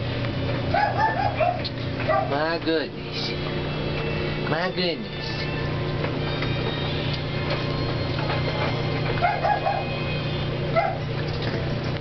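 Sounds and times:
steady low hum: 0.0 - 12.0
puppies yipping: 0.6 - 2.5, 7.9 - 11.6.

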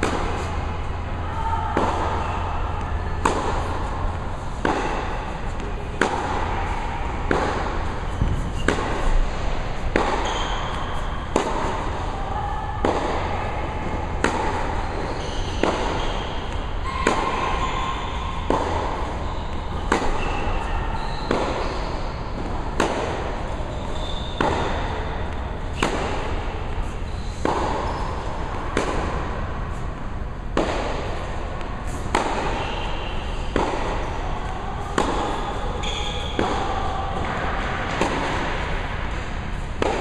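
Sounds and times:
racket hitting tennis ball: 0.0 - 40.0
steady background hum: 0.0 - 40.0.

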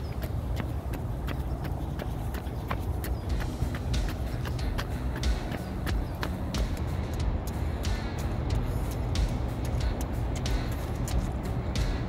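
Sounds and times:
running footsteps on asphalt: 0.0 - 12.0
wind rumble: 0.0 - 12.0.

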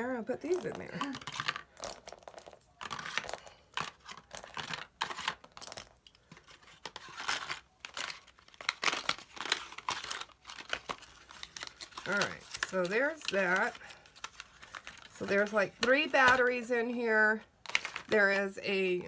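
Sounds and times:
packaging crinkling and rustling: 0.4 - 16.7, 17.6 - 18.5.

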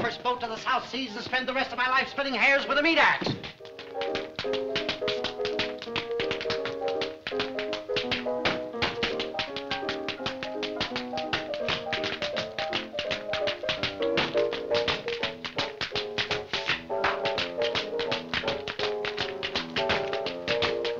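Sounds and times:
music accompaniment: 0.0 - 20.9
tap shoes striking floor: 0.0 - 20.9.

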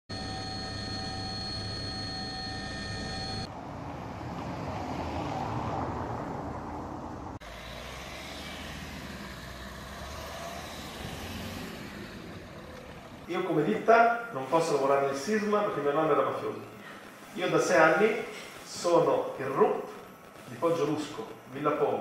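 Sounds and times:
general vehicle noise: 3.0 - 19.1.

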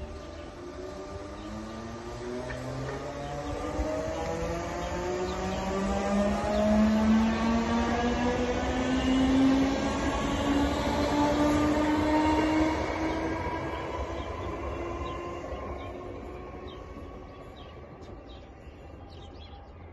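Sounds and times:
train wheels rumbling on rails: 0.0 - 19.7.

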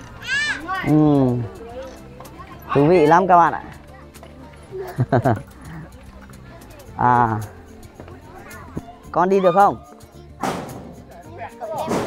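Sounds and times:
faint background music: 0.0 - 12.0
person laughing: 4.7 - 5.9.

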